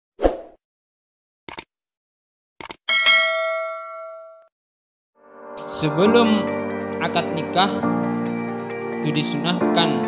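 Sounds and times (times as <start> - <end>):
bell ding: 2.9 - 4.5.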